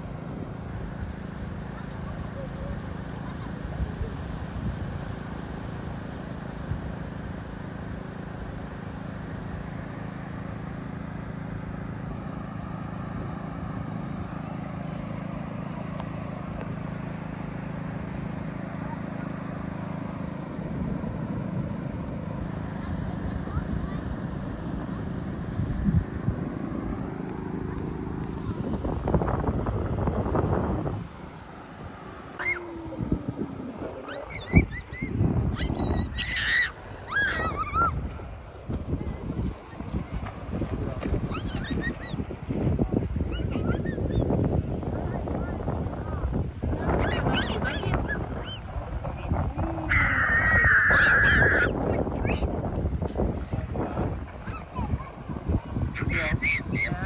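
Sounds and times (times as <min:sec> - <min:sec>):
low seaside rumble: 0:00.0 - 0:57.0
distant children playing: 0:12.4 - 0:20.5, 0:22.1 - 0:25.5, 0:31.2 - 0:52.7, 0:53.4 - 0:57.0.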